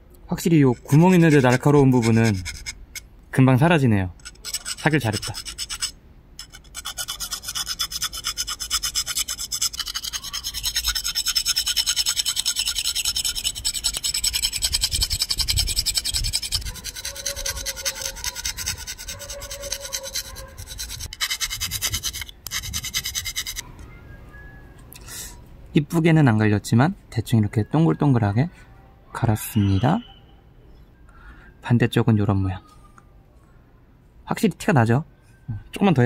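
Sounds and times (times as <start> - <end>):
file rasping on metal bar: 0.7 - 2.8, 4.2 - 23.6.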